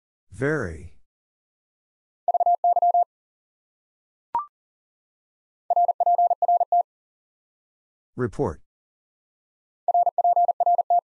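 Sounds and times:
morse code tone: 0:02.3 - 0:03.1, 0:05.7 - 0:06.8, 0:09.9 - 0:11.0.

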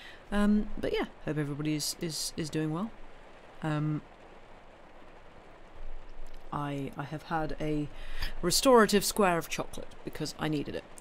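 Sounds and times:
steady background hiss: 0:00.0 - 0:11.0
person speaking: 0:06.4 - 0:10.9.

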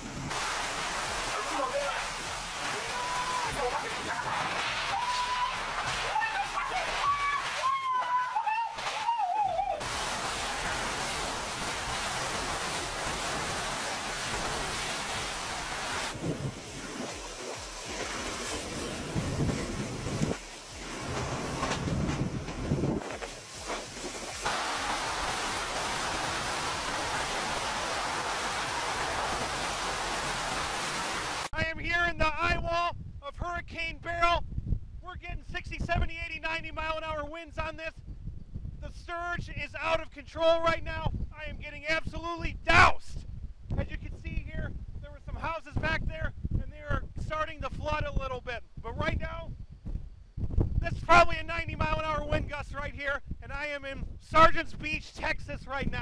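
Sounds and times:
wind and driving rain: 0:00.0 - 0:31.6.

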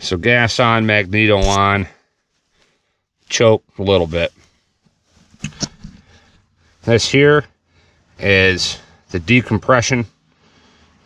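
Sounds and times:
man's voice: 0:00.0 - 0:01.9
faint rustling: 0:00.9 - 0:08.0.

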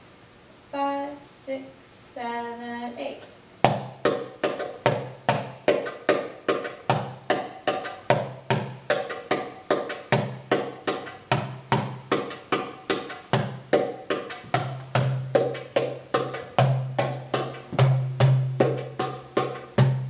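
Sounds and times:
percussion drum rhythm: 0:03.6 - 0:20.0.

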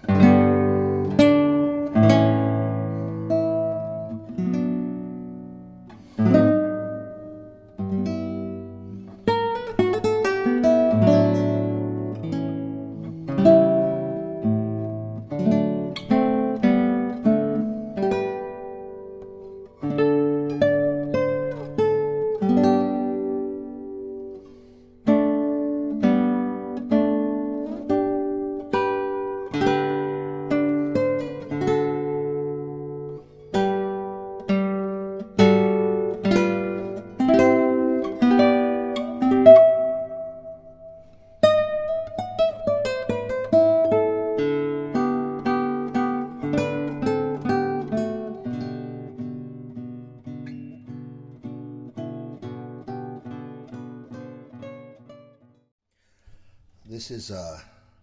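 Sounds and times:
classical guitar played fingerstyle: 0:00.0 - 0:55.7.

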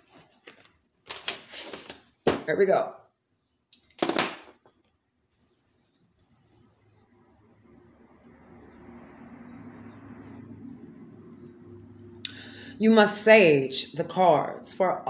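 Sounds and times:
long breath blown: 0:12.2 - 0:12.8
sharp puff of breath: 0:12.3 - 0:12.8.

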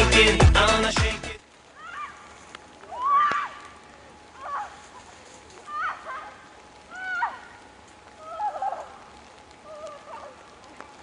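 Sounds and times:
upbeat music with a beat: 0:00.0 - 0:01.4.

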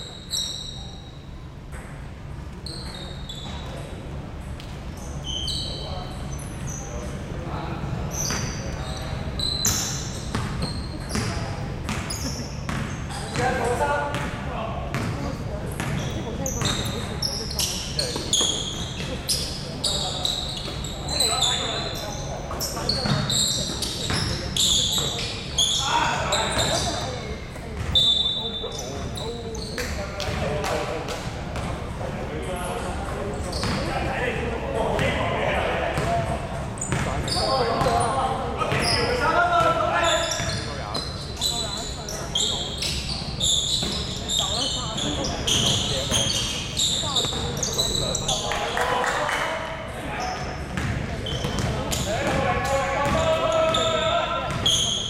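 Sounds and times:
sneakers squeaking: 0:00.0 - 0:55.0
players calling out: 0:51.2 - 0:55.0
basketball bouncing on floor: 0:53.0 - 0:53.2.

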